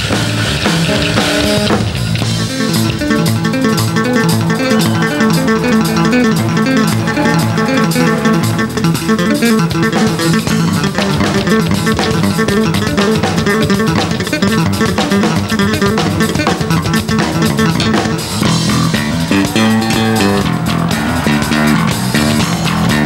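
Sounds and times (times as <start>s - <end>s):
drum kit with cymbal crashes: 0.0s - 23.0s
electric bass guitar playing: 0.0s - 23.0s.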